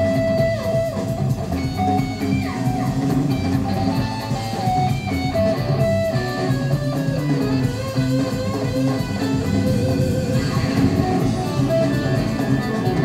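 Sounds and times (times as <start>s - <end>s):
electric guitar sliding notes: 0.0s - 13.0s
rock band playing loudly: 0.0s - 13.0s.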